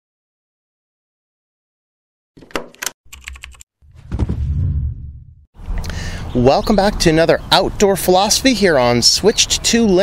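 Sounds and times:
deep loud sound effect: 3.8s - 6.0s.

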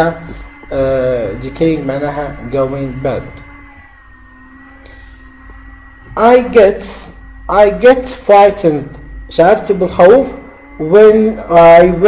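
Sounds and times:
man's voice: 0.0s - 3.4s, 6.2s - 12.0s
low electrical hum: 0.0s - 12.0s.

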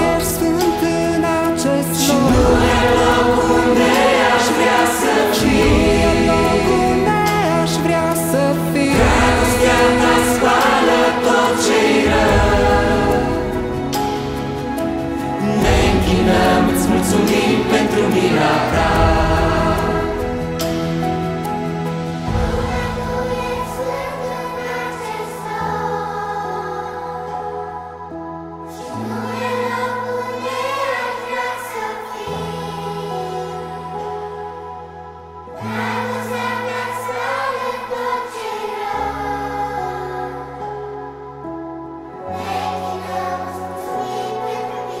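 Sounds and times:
choir singing worship song: 0.0s - 45.0s
low accompaniment: 2.1s - 24.8s.

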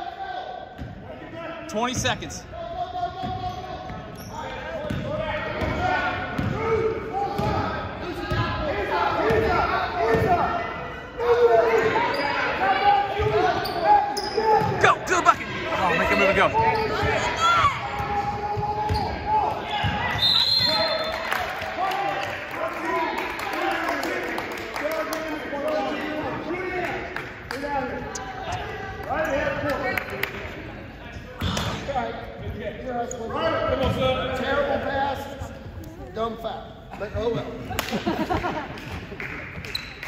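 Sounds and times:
echoing shouting voices: 0.0s - 30.0s.

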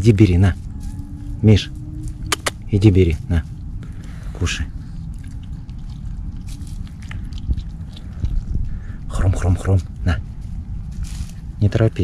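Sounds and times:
low steady rumble: 0.0s - 12.0s
fox chewing raw meat: 0.6s - 11.6s.

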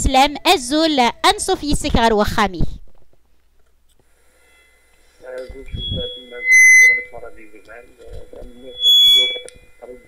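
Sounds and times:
person talking on radio: 5.2s - 6.4s, 7.1s - 8.8s
high electronic beep: 5.7s - 7.6s, 8.4s - 10.0s.

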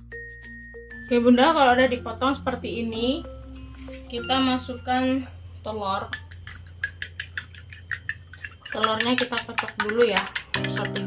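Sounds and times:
fork beating egg in glass bowl: 6.0s - 11.0s.

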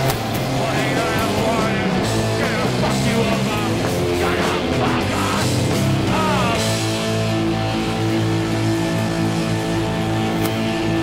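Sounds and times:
live punk rock band: 0.0s - 11.0s
shouted vocal: 0.6s - 7.0s.

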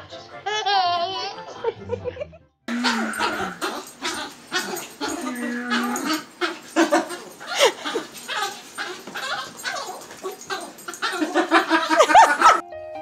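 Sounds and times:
puppy yipping and whining: 2.8s - 12.6s.

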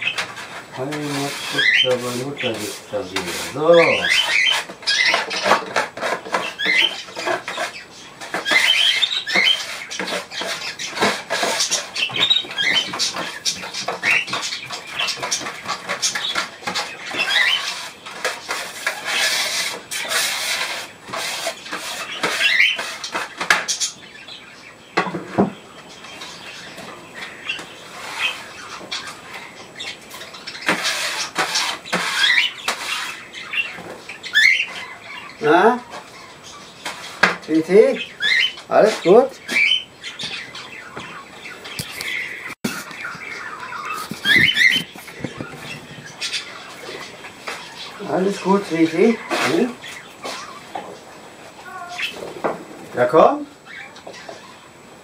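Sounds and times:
budgerigars chirping: 0.0s - 52.2s, 53.0s - 54.8s
hand brush sweeping grit: 0.4s - 4.8s, 8.5s - 13.4s, 15.3s - 23.4s, 27.9s - 28.7s, 30.7s - 33.2s.

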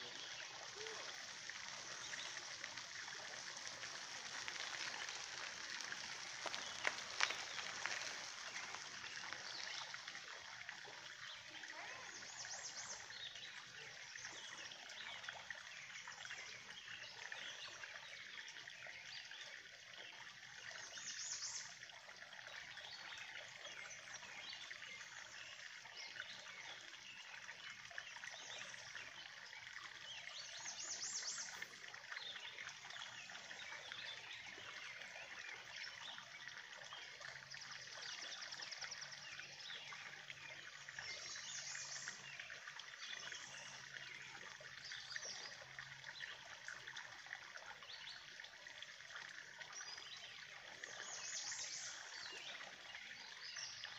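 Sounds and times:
trickle of water: 0.0s - 53.9s.

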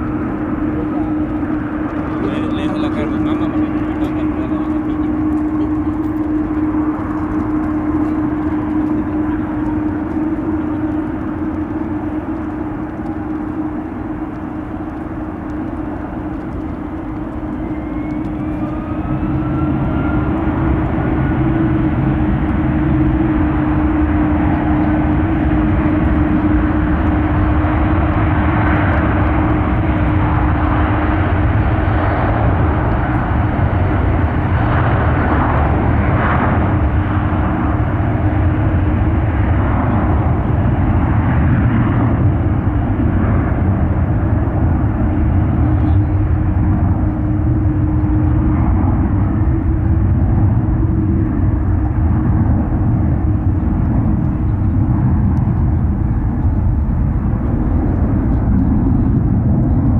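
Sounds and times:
jet engines spooling up: 0.0s - 59.9s.

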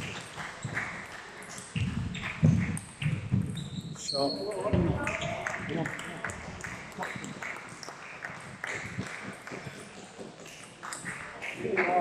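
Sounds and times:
table tennis balls clicking: 0.0s - 4.0s, 4.6s - 12.0s.

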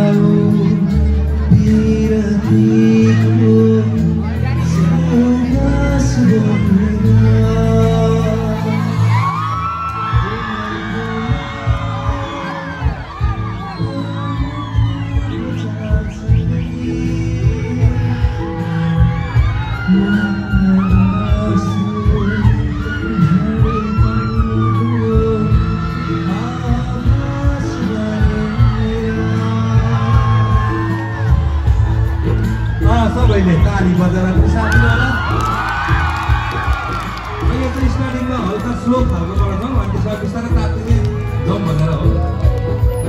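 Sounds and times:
man singing into a microphone: 0.0s - 31.7s
live pop backing music: 0.0s - 43.0s
crowd whooping: 7.5s - 43.0s.

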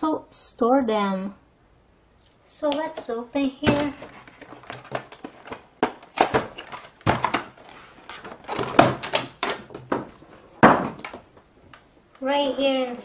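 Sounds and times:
scrapes and rustles: 3.7s - 5.6s
plastic case knocks: 4.6s - 7.6s, 8.5s - 11.2s.

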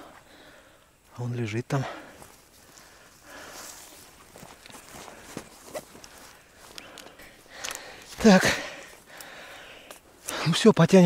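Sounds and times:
footsteps rustling through grass: 2.0s - 10.5s.

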